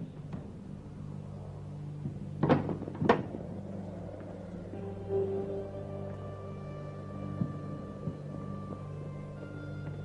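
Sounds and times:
low steady drone: 0.0s - 10.0s.

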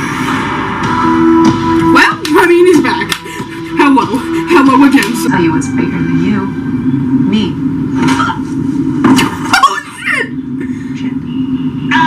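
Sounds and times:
steady low drone: 0.0s - 9.5s
voices from television: 0.0s - 12.0s.

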